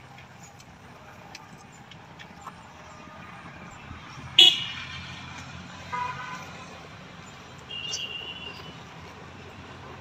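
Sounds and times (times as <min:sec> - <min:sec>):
traffic rumble: 0:00.0 - 0:10.0
vehicle horn toots: 0:04.4 - 0:04.9, 0:05.9 - 0:06.5, 0:07.7 - 0:08.7.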